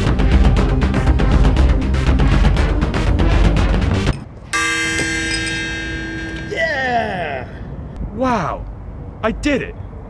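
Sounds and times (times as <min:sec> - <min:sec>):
bell clanging: 0:04.5 - 0:07.7.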